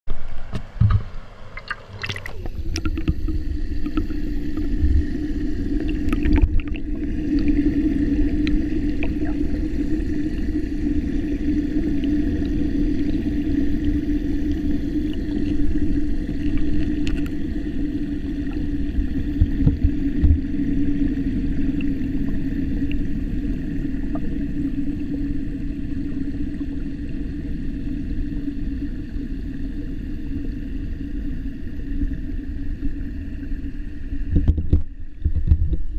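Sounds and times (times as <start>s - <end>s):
underwater river rushing: 0.1s - 35.9s
water splashing: 0.2s - 24.6s
knocks underwater: 0.5s - 4.1s, 19.4s - 20.4s, 34.3s - 35.9s.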